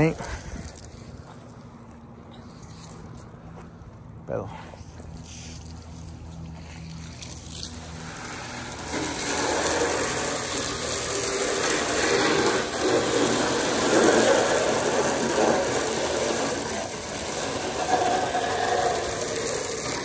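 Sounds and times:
hose spraying water on plastic: 0:00.0 - 0:01.7, 0:05.2 - 0:20.0.

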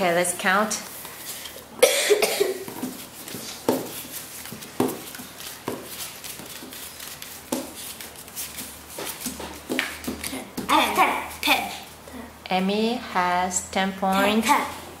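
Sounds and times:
person coughing: 0:01.8 - 0:02.7
cards tapping on wooden table: 0:02.7 - 0:05.9.

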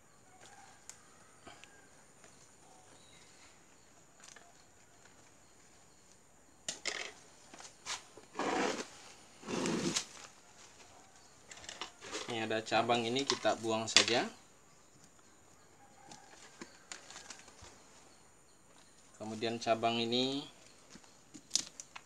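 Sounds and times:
leafy branches rustling: 0:07.4 - 0:11.2.

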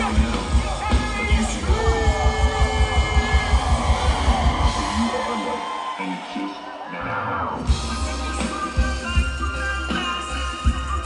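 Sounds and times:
live reggae-rock band: 0:00.0 - 0:11.0.

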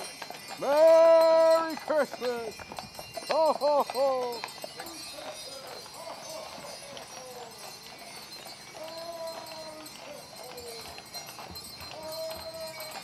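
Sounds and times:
distant voices calling out: 0:00.0 - 0:13.0
hooves clip-clopping on pavement: 0:00.0 - 0:13.0.

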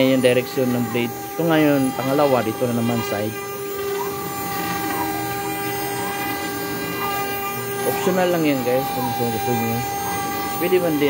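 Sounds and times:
router spindle high whine: 0:00.0 - 0:11.0.

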